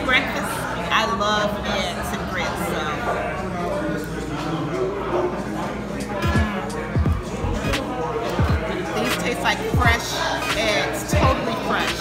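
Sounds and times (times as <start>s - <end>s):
diners talking: 0.0s - 12.0s.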